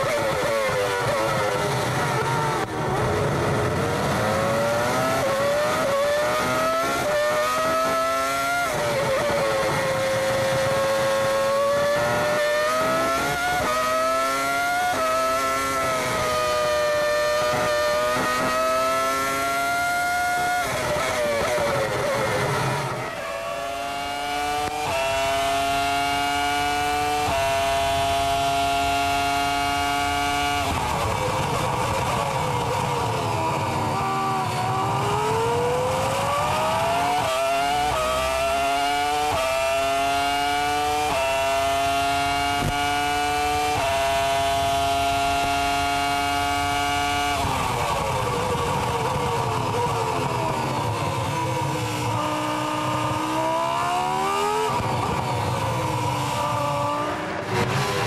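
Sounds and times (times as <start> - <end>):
racing car engine upshifting: 0.0 - 58.0.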